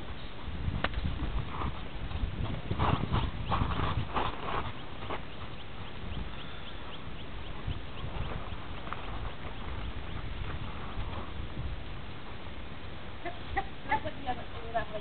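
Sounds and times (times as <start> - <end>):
horse hooves clip-clopping: 0.0 - 12.5.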